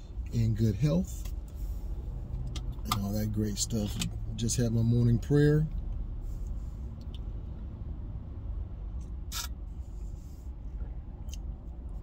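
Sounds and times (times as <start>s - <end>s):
car engine rumble and road noise: 0.0s - 12.0s.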